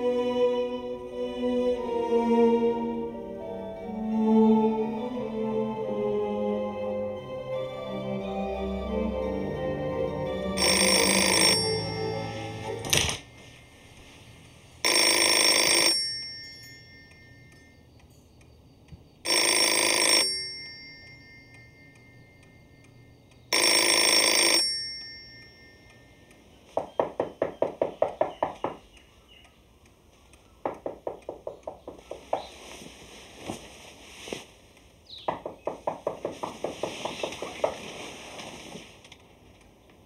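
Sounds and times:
telephone bell ringing: 0:10.6 - 0:13.7, 0:14.8 - 0:17.5, 0:19.3 - 0:22.8, 0:23.5 - 0:26.3
quick sharp taps: 0:30.6 - 0:32.6, 0:35.2 - 0:37.9.

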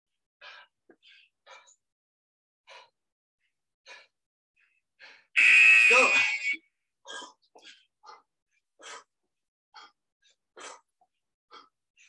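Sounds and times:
electronic timer buzzer beep: 0:05.4 - 0:06.6.

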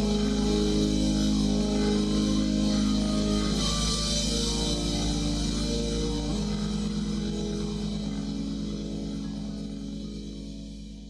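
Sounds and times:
praise band holding chord: 0:00.0 - 0:11.0.

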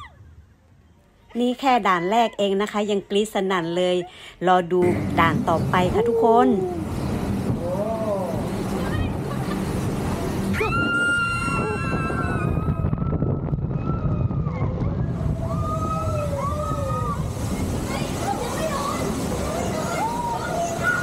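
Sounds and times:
boat rushing through water: 0:04.8 - 0:21.0.

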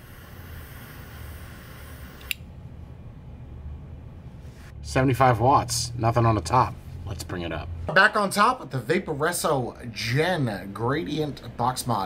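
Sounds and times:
torch flame hissing: 0:00.0 - 0:02.4
lighter shut-off click: 0:00.5 - 0:02.5.

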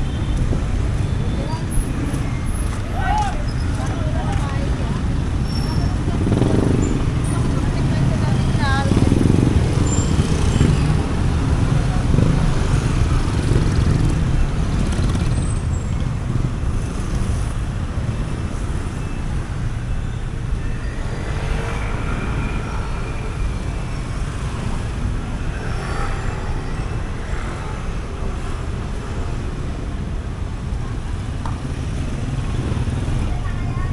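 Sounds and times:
traffic engine and tyre rumble: 0:00.0 - 0:33.9.

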